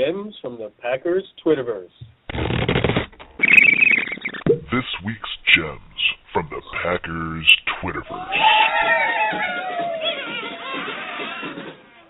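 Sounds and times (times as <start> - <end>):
dense crackling burst: 2.2 - 8.2.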